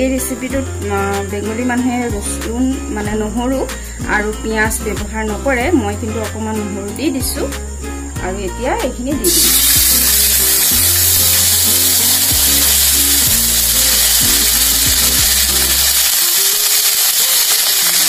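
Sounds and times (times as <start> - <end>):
background music with bass line: 0.0 - 16.2
paste sizzling in hot oil: 9.2 - 18.0.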